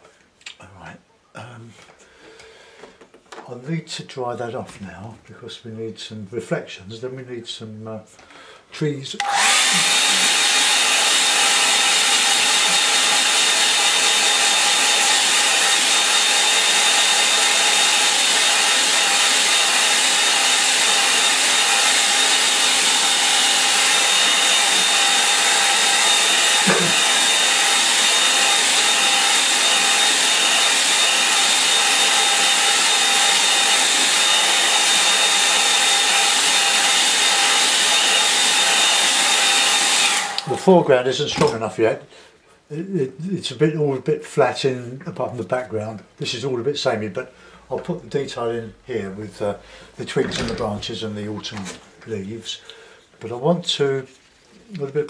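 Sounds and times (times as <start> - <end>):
hair dryer blowing: 9.2 - 40.8.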